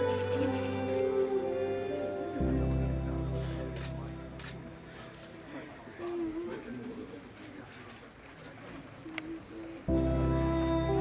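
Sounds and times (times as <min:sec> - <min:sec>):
murmuring voices: 0:00.0 - 0:11.0.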